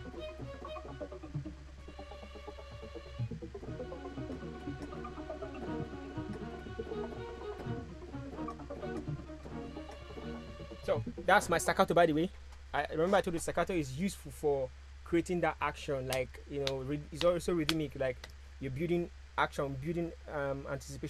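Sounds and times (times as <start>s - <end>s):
staccato string notes: 0.0s - 11.8s
tremolo string bed: 0.0s - 13.8s
steady low hum: 0.0s - 21.0s.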